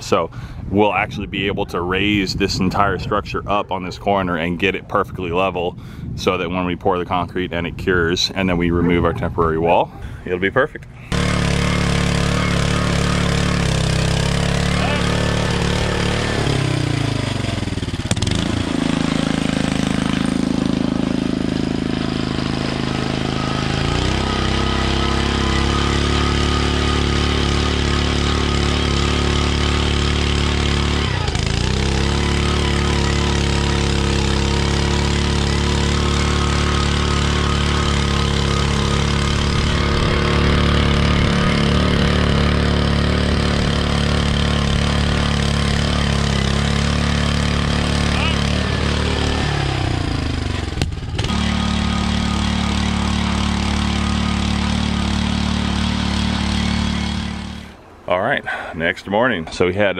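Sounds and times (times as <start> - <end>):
earth auger engine running: 11.0 - 57.8.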